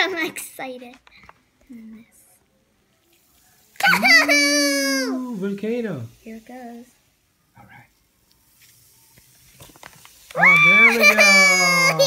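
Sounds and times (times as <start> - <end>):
faint fizzing foam: 1.1 - 12.0.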